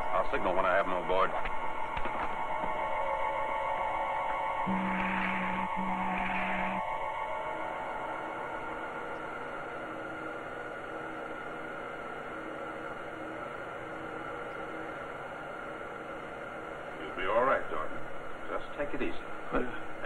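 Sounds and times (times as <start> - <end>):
steady hum and hiss: 0.0 - 20.0
faint held tones: 1.6 - 18.4.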